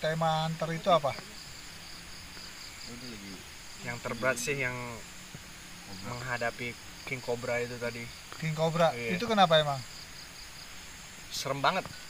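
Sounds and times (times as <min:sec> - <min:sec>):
insects trilling: 0:00.0 - 0:12.0
man murmuring: 0:02.9 - 0:05.0.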